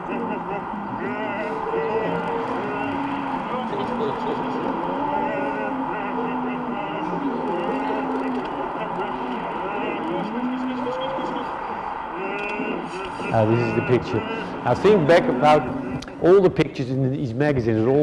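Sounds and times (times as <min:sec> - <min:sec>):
steady background noise: 0:00.0 - 0:18.0.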